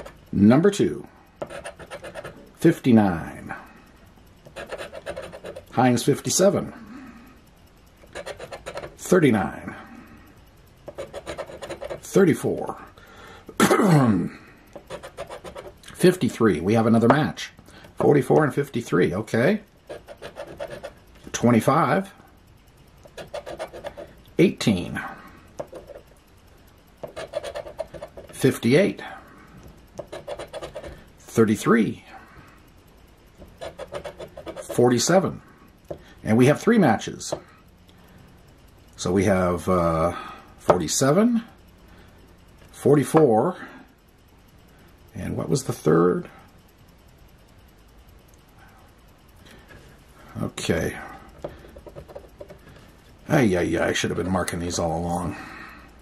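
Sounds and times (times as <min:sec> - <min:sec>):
faint low hum: 0:00.0 - 0:56.0
coin scraping lottery ticket: 0:01.4 - 0:02.5, 0:04.5 - 0:05.8, 0:08.1 - 0:09.0, 0:10.9 - 0:12.1, 0:14.8 - 0:15.8, 0:19.9 - 0:21.0, 0:23.1 - 0:24.1, 0:27.0 - 0:28.4, 0:30.0 - 0:31.0, 0:33.5 - 0:34.8.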